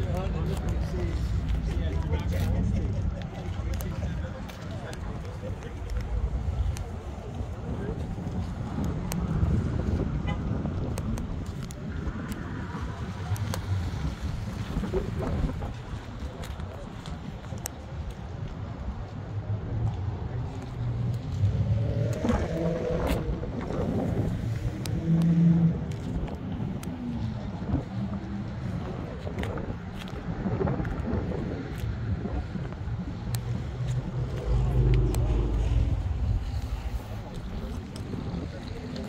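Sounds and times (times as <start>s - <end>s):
voices: 0.0s - 29.9s, 32.2s - 39.0s.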